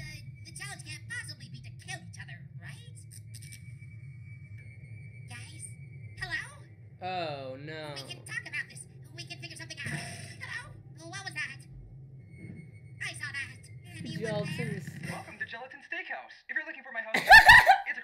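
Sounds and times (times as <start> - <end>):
quiet background music: 0.0 - 18.0
animated characters speaking: 6.2 - 11.4, 13.2 - 15.5
steady low drone: 11.7 - 15.5.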